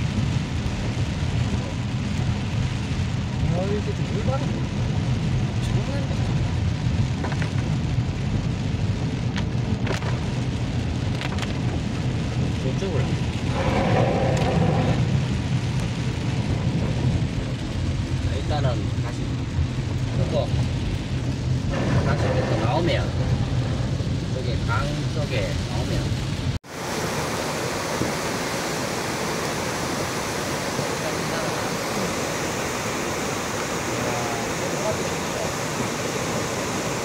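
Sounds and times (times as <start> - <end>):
engine and tyres on wet road: 0.0 - 37.0
rain hissing on car: 0.0 - 37.0.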